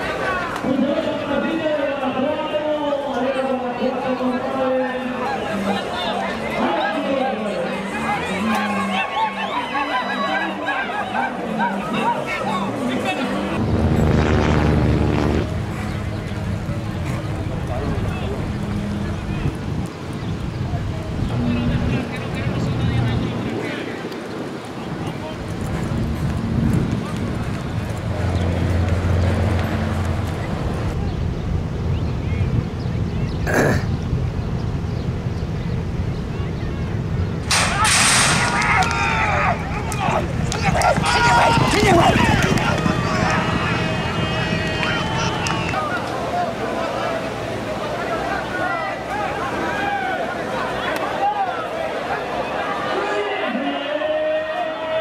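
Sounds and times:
voices shouting: 0:02.1 - 0:13.6, 0:37.5 - 0:55.0
vehicle engine droning: 0:11.4 - 0:23.6, 0:25.4 - 0:33.0, 0:34.3 - 0:48.4
metal starting gate banging open: 0:37.5 - 0:38.9.

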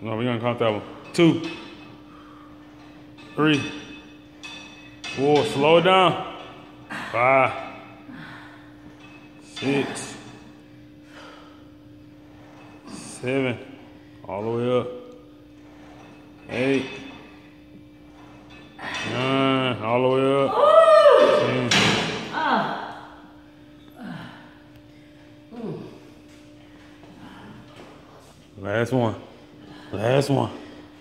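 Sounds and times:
steady low hum: 0:00.0 - 0:31.0
woman groaning: 0:06.9 - 0:08.6, 0:20.5 - 0:21.7, 0:22.3 - 0:23.1, 0:23.8 - 0:24.6, 0:25.5 - 0:26.1
woman exhaling with effort: 0:08.1 - 0:08.8, 0:24.0 - 0:24.5.

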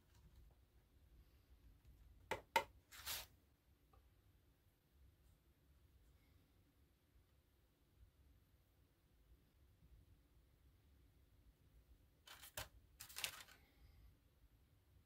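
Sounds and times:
brief rustling handling noises: 0:12.3 - 0:13.7.

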